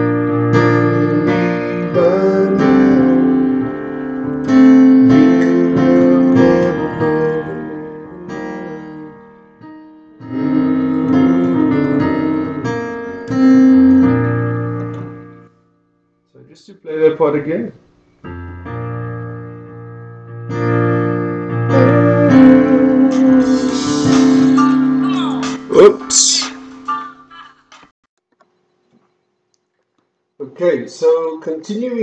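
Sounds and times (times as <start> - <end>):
piano sustained chords: 0.0 - 15.5, 18.3 - 27.3.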